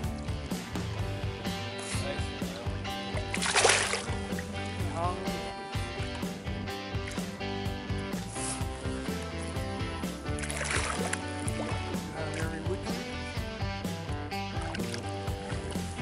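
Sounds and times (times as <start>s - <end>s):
background music with steady beat: 0.0s - 16.0s.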